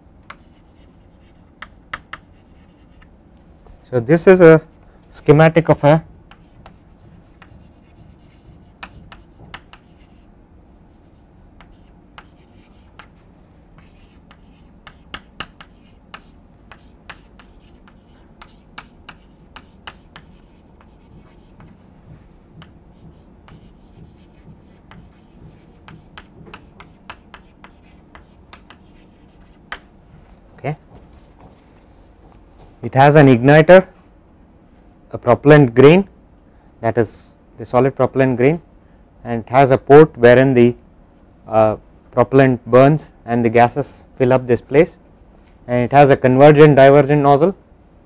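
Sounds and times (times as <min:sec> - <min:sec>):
low room hum: 0:00.0 - 0:48.0
chalk tapping and scratching: 0:00.3 - 0:03.1, 0:06.3 - 0:10.3, 0:10.9 - 0:13.2, 0:13.8 - 0:29.9.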